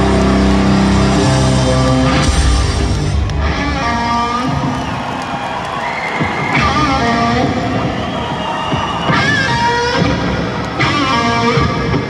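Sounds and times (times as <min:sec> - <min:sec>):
electric guitar bending notes: 0:00.0 - 0:04.8
drums and bass: 0:00.0 - 0:05.5
crowd cheering: 0:00.0 - 0:12.0.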